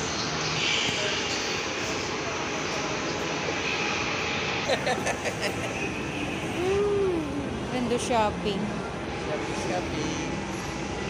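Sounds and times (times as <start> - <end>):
broad rush of hall noise: 0.0 - 11.0.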